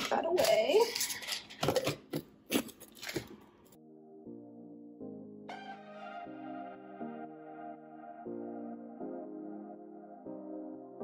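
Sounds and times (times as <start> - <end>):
soft background music: 3.7 - 11.0.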